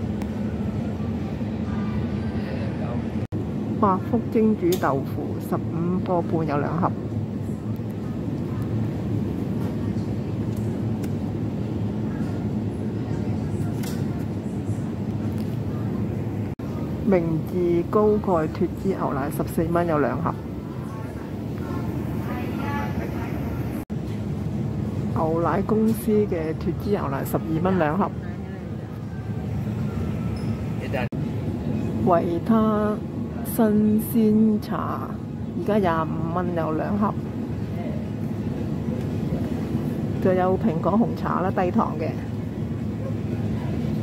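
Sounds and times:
refrigerated display case humming: 0.0s - 44.0s.

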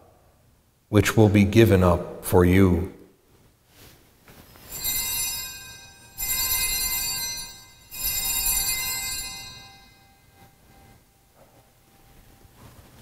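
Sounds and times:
altar bells ringing: 4.5s - 12.5s.

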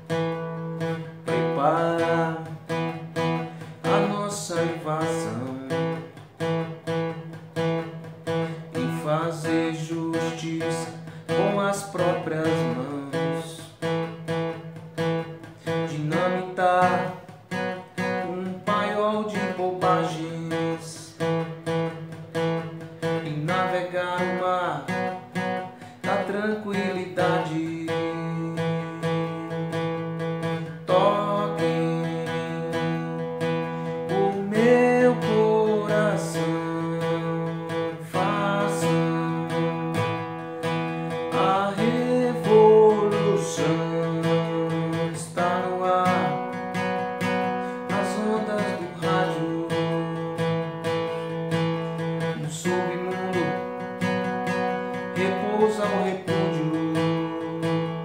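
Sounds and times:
acoustic guitar strumming power chords: 0.0s - 58.0s.

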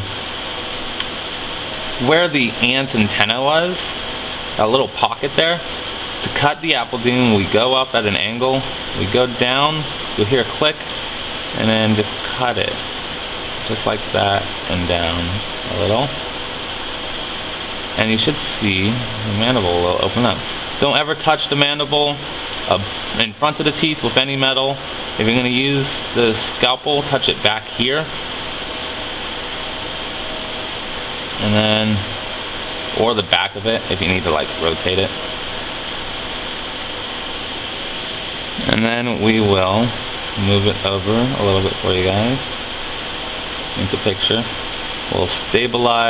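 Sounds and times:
steady background hiss: 0.0s - 46.0s.

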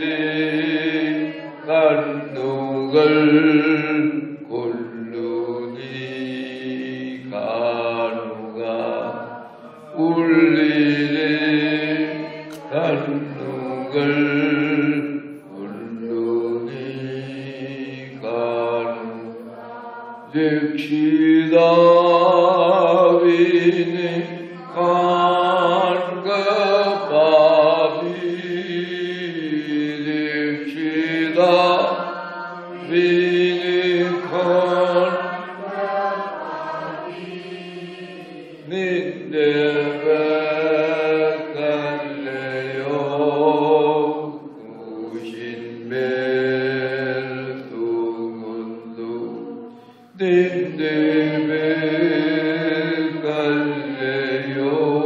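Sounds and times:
men chanting a hymn: 0.0s - 55.0s.

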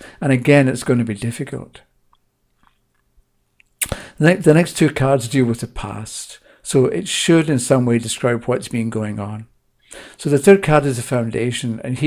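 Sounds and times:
faint room hum: 0.0s - 12.0s
man's mouth clicks and lip smacks: 2.1s - 4.0s.

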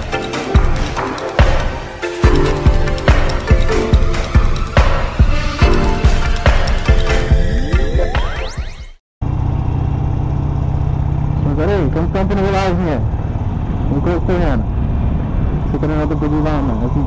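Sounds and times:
motorcycle engine cruising: 0.0s - 8.1s, 9.2s - 17.0s
background music: 0.0s - 8.8s
road and wind hiss: 12.8s - 17.0s.

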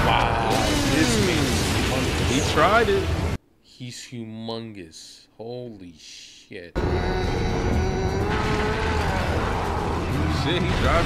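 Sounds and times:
loud rumble of battle sound effects: 0.0s - 3.4s, 8.2s - 11.0s.

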